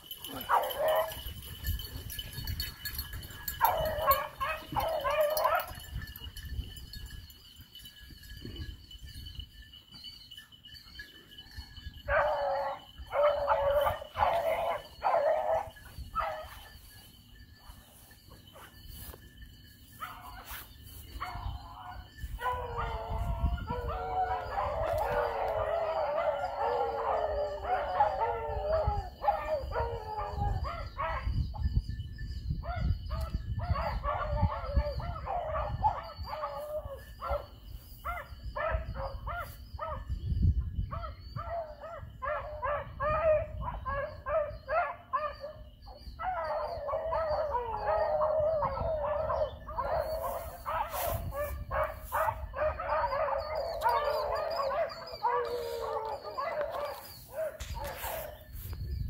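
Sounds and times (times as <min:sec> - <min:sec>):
dogs barking: 0:00.0 - 0:06.0, 0:12.0 - 0:16.9, 0:20.0 - 0:31.3, 0:32.6 - 0:40.0, 0:41.0 - 0:58.5
beagles baying: 0:00.0 - 0:06.1, 0:12.0 - 0:19.2, 0:20.0 - 0:31.3, 0:41.4 - 0:58.7.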